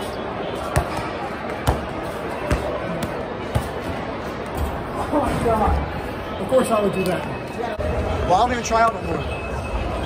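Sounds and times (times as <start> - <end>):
murmur of voices: 0.0 - 10.0
basketball bouncing on tile floor: 0.8 - 1.9.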